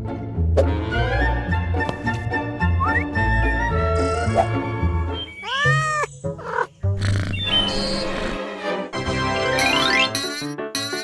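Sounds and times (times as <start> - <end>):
light children's music: 0.0 - 6.8, 7.4 - 11.0
cartoon meow-like animal call: 5.4 - 6.1.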